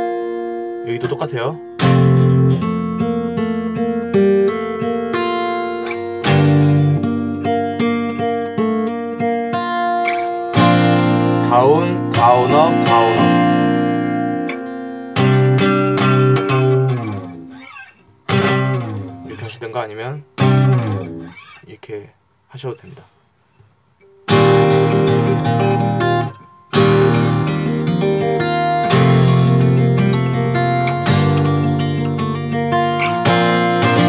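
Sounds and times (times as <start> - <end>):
fingerstyle acoustic guitar: 0.0 - 21.6, 22.8 - 34.0.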